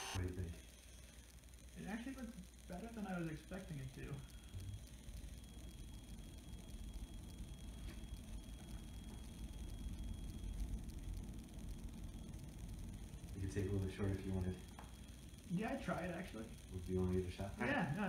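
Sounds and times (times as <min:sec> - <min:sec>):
low steady rumble: 0:00.1 - 0:18.0.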